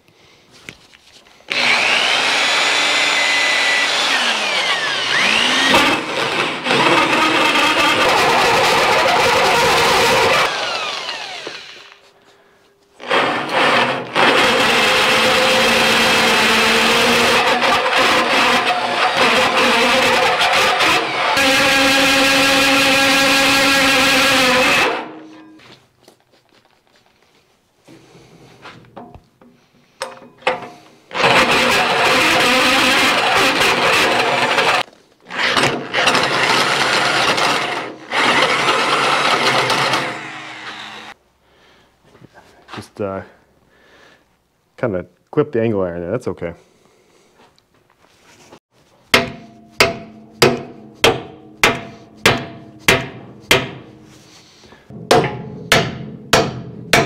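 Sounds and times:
drill hole saw cutting steel: 0:01.5 - 0:12.0, 0:13.0 - 0:25.3, 0:31.1 - 0:41.2.

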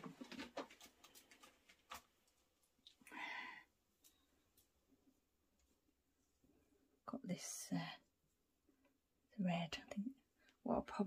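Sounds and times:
woman whispering: 0:09.4 - 0:11.0.

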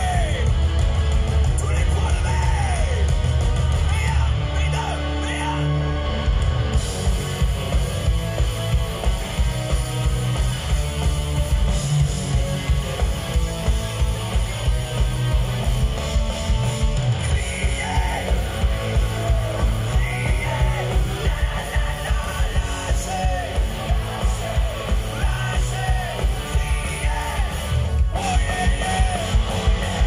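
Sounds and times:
driving drum beat: 0:00.0 - 0:30.0
electric guitars: 0:00.0 - 0:30.0.

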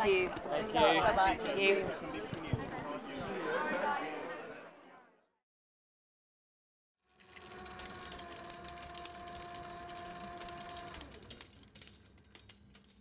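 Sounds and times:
winding machine motor whine: 0:07.0 - 0:11.7
reel rattling clicks: 0:07.2 - 0:13.0.

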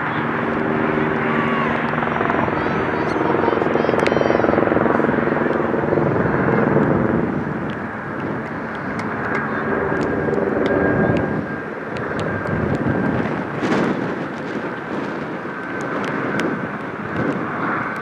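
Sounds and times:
aircraft engine droning: 0:00.0 - 0:18.0.

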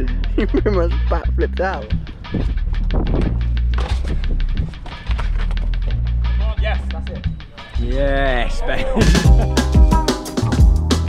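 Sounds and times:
music with heavy bass and beat: 0:00.0 - 0:11.0.

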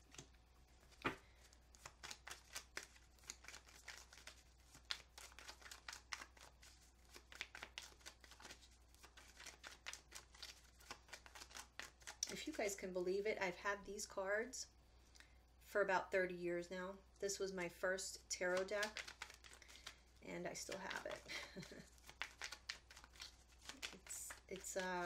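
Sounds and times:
cards being shuffled: 0:00.0 - 0:12.8, 0:18.4 - 0:25.0.

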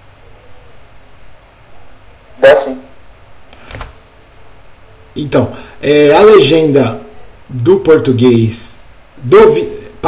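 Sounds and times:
quick clicks: 0:03.5 - 0:04.0.

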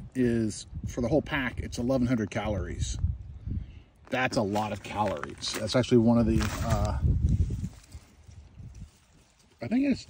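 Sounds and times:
microphone handling rumble: 0:02.4 - 0:09.0.

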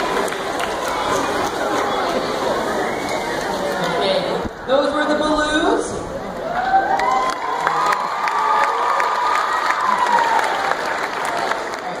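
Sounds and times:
audience applauding: 0:00.0 - 0:03.8, 0:06.5 - 0:12.0
long high cheer: 0:06.4 - 0:12.0.

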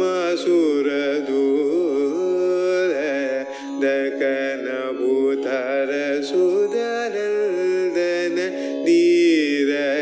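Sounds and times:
person singing ornamented phrases: 0:00.0 - 0:10.0.

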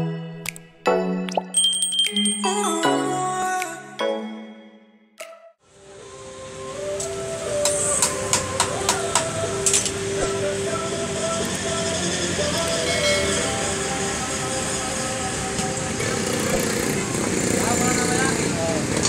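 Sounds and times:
repair shop din: 0:07.0 - 0:19.0.

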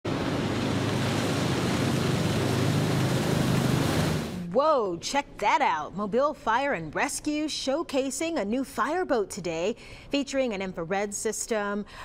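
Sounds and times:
water rushing and spray: 0:00.0 - 0:04.5
boat engine drone: 0:00.1 - 0:04.5
wind: 0:00.1 - 0:04.5.

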